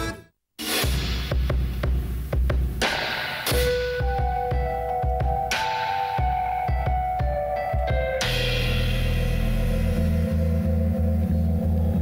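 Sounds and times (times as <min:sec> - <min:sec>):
steady low pulse: 0:08.5 - 0:12.0.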